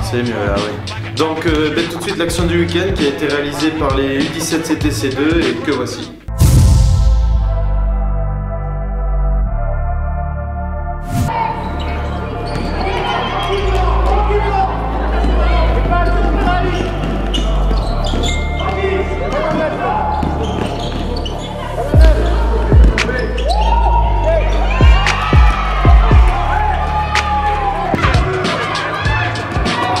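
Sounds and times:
players' voices: 0.0s - 6.2s, 11.3s - 30.0s
background music: 0.0s - 30.0s
shoes squeaking on court: 11.5s - 13.8s, 15.1s - 23.8s.

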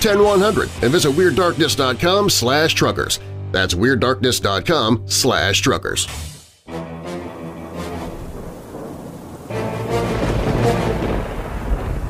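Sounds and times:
rain hissing: 0.0s - 2.0s, 7.0s - 12.0s
thunder rumbling: 7.6s - 12.0s.

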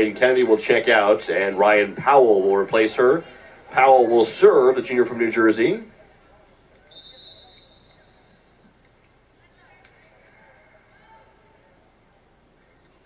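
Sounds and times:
referee's whistle blast: 6.9s - 8.6s.

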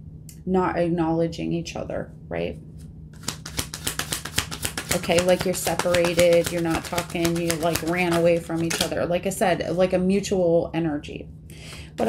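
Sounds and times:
cards being shuffled: 3.2s - 9.0s.

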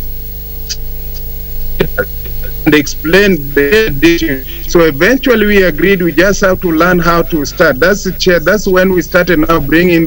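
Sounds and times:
electrical hum and buzz: 0.0s - 10.0s.

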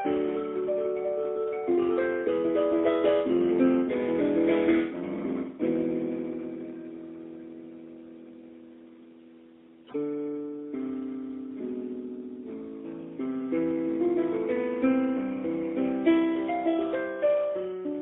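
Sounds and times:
solo piano playing: 0.0s - 18.0s.

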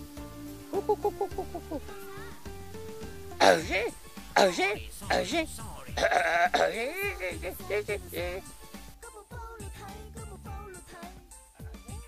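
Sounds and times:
man speaking: 3.4s - 8.5s.

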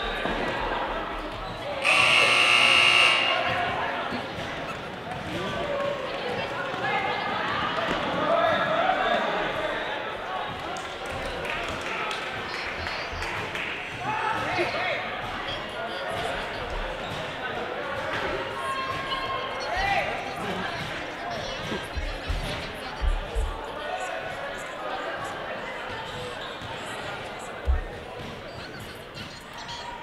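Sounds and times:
people calling and chattering: 0.0s - 30.0s.

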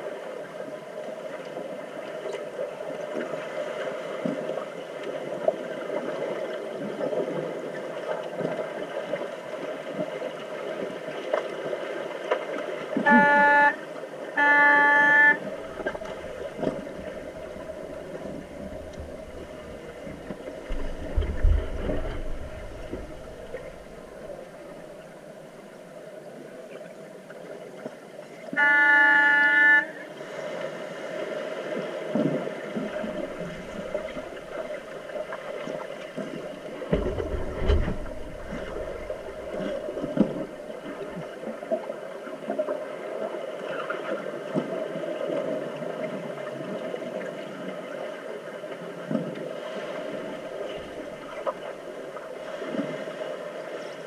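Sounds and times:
underwater bubbles and churning: 0.0s - 54.0s
underwater horn blasts: 13.0s - 25.2s, 28.5s - 30.2s, 32.8s - 41.2s.

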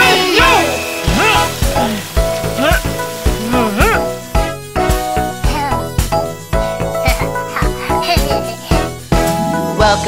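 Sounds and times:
fire hose water spraying: 0.0s - 9.4s
children's song with beat: 4.8s - 10.0s.

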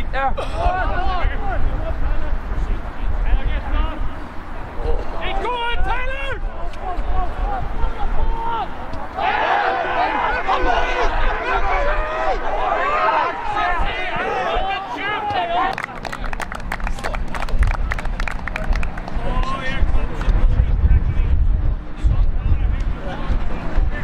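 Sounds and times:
men calling out: 4.7s - 15.8s
low rumble: 17.5s - 24.0s.

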